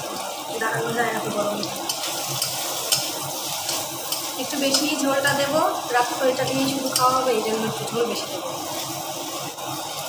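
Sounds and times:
food sizzling in a pan: 0.0 - 10.0
metal spatula clicking on pan: 1.8 - 5.6, 6.4 - 7.3.

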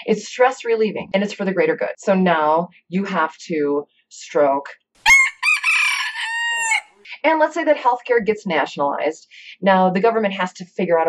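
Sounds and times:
rooster crowing: 5.0 - 6.9.

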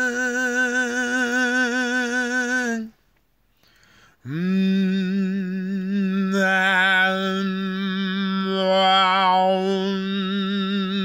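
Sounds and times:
man humming a low note: 4.3 - 11.0.

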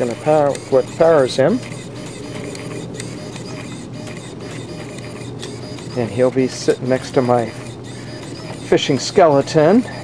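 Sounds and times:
servo clicks: 0.0 - 10.0
servo whirring buzz: 0.0 - 10.0.

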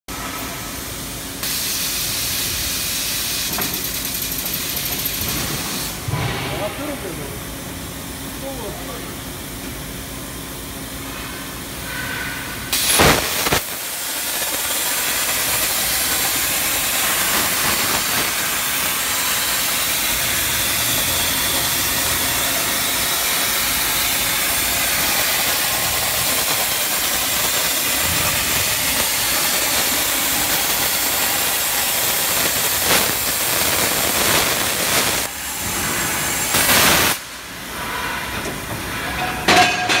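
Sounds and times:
cutting arc hissing: 0.6 - 7.1, 11.9 - 37.4
plasma arc popping: 12.7 - 37.4.

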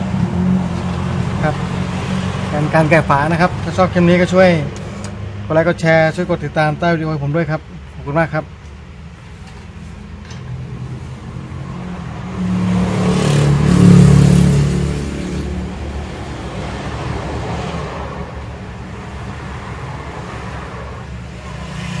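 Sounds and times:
vehicle passing: 0.0 - 6.4, 10.0 - 22.0.

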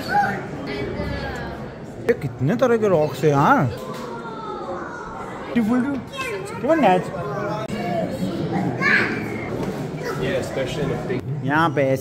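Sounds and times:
background chatter: 0.0 - 12.0
children talking: 0.0 - 12.0
high child's voice: 6.1 - 10.2.

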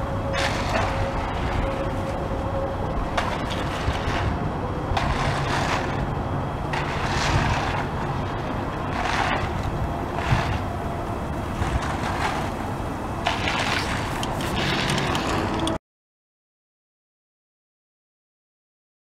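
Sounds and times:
machinery engine hum: 0.0 - 15.8
bull float swishing on wet concrete: 0.3 - 2.3, 3.0 - 6.1, 6.7 - 15.5.

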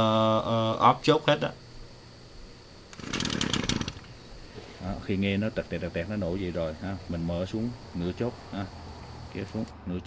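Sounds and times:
string trimmer pull-start: 3.0 - 4.0.

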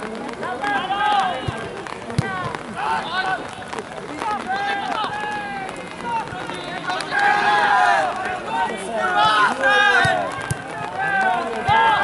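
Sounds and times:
voices shouting calls: 4.2 - 12.0.

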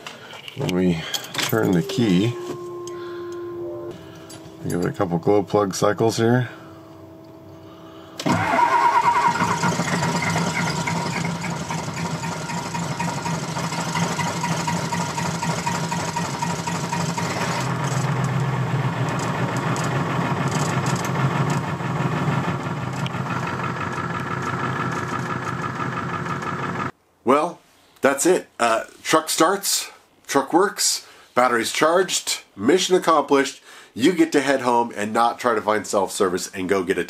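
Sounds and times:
diesel engine cranking and idling: 8.2 - 26.9.

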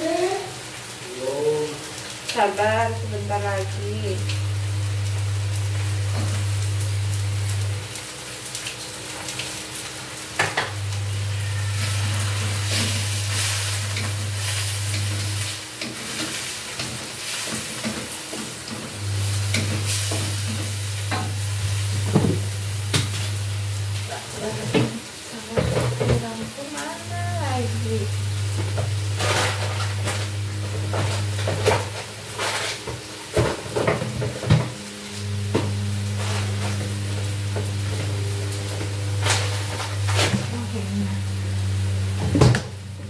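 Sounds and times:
food sizzling in a pan: 0.0 - 43.0
low hum: 10.6 - 15.6, 33.8 - 43.0.

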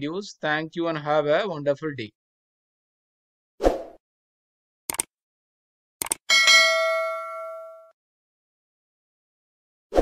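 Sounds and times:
bell-like notification ding: 6.3 - 7.9.

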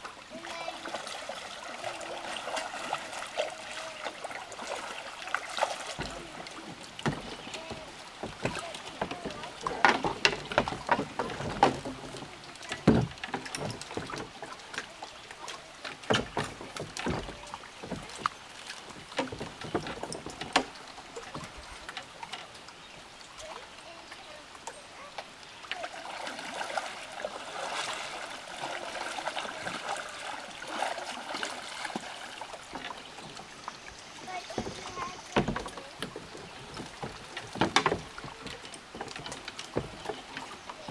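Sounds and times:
kayak paddle strokes: 0.0 - 40.9
water splashing: 0.0 - 40.9
sharp knocks against wooden dock: 5.6 - 14.9, 16.0 - 18.3, 19.1 - 21.5, 34.4 - 40.9.

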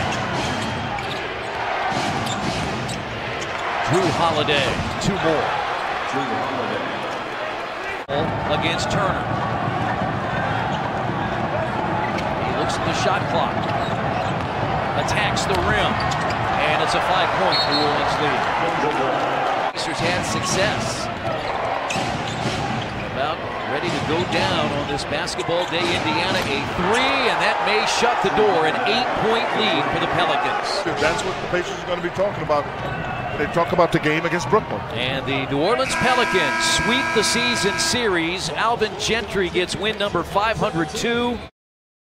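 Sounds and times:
arena crowd hubbub: 0.0 - 41.5.

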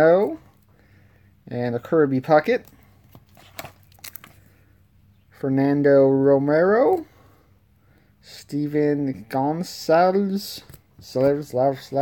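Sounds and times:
cards in plastic sleeves rustling: 1.8 - 4.7, 10.4 - 12.0.

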